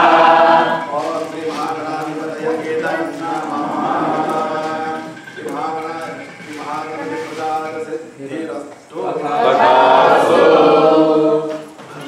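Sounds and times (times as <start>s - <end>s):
voices chanting in unison: 0.0s - 12.0s.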